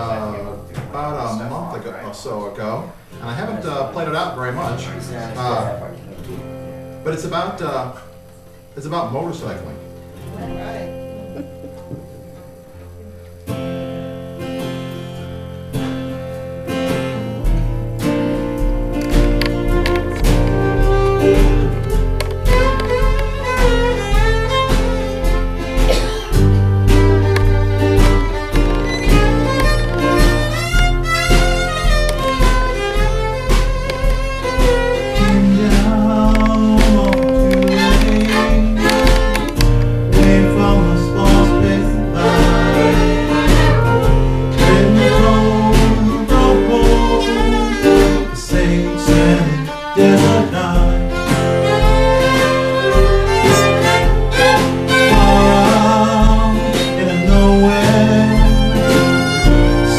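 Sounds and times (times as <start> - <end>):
acoustic guitar: 0.0 - 59.9
drum kit beat: 10.4 - 59.9
fiddles playing melody: 18.7 - 59.9.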